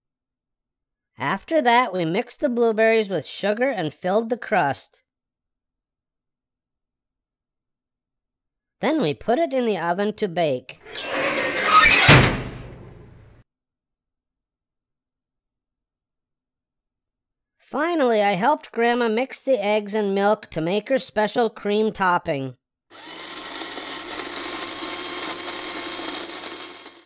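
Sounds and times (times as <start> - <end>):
oven door slamming shut: 10.9 - 13.2
electric hand mixer whirring: 23.0 - 27.0.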